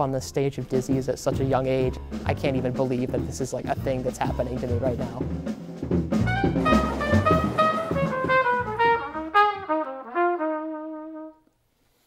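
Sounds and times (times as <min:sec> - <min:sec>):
bass: 0:00.0 - 0:11.3
horn playing jazz melody: 0:06.1 - 0:11.5.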